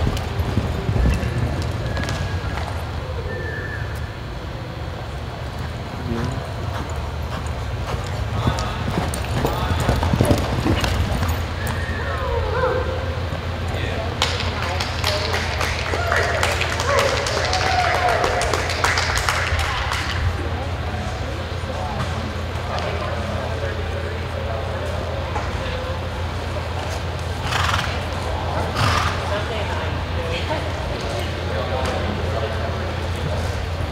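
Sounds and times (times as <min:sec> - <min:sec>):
horse hoofbeats on dirt: 0:00.0 - 0:03.0, 0:05.5 - 0:12.0
indistinct voices: 0:00.0 - 0:33.9
steady low hum: 0:00.0 - 0:33.9
horse whinnying: 0:11.6 - 0:13.0.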